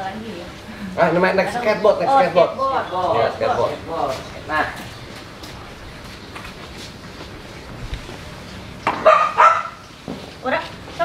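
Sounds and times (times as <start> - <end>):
dog barking: 9.0 - 9.8
dog yipping: 9.0 - 9.8.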